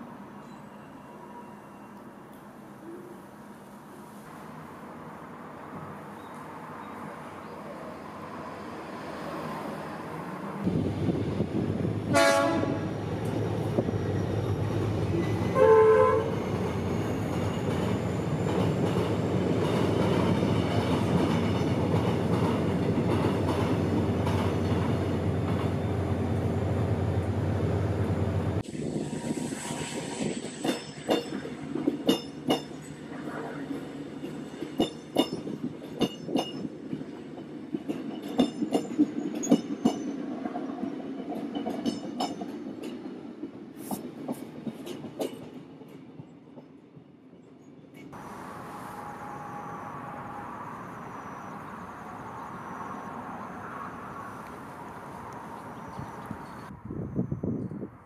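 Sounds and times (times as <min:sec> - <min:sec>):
train wheels rumbling on track: 0:08.2 - 0:46.7.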